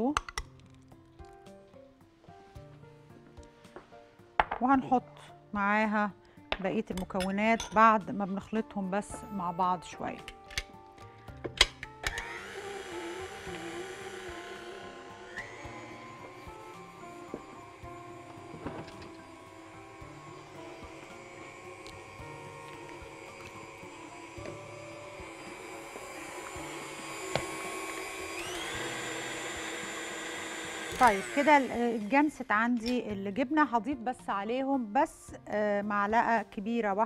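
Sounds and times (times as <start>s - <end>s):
mixer clicks: 11.6s - 19.4s, 20.3s - 32.0s
stand mixer motor whine: 12.1s - 32.1s.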